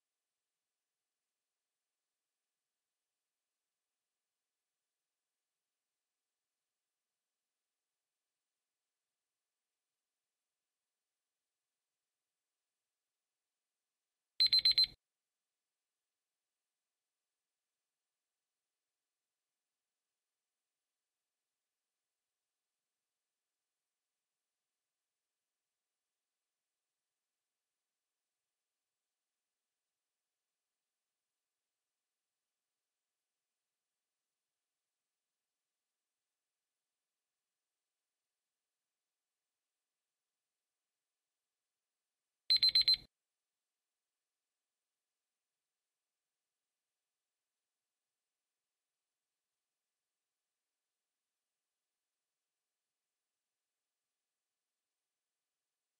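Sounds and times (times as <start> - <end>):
alarm clock beeping: 14.4 - 15.0, 42.5 - 43.0.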